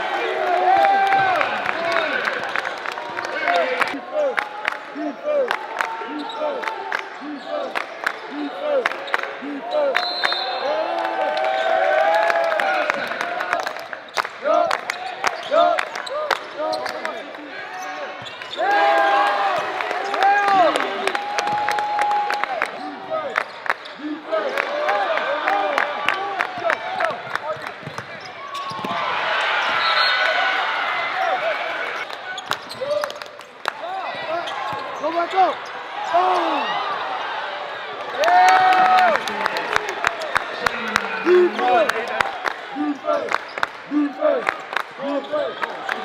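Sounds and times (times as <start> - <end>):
sneakers squeaking on court: 17.7 - 18.6, 27.5 - 30.2, 32.0 - 33.0, 34.1 - 35.8.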